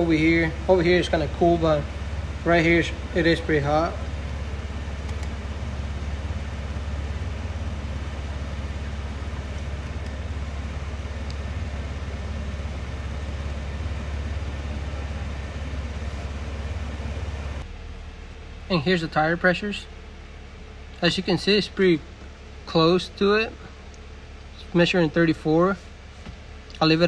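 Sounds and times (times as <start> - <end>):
car engine idling: 0.0 - 27.0.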